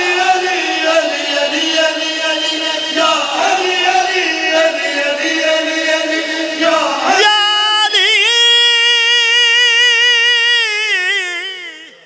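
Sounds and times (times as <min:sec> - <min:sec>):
man singing a long high note: 0:00.0 - 0:12.0.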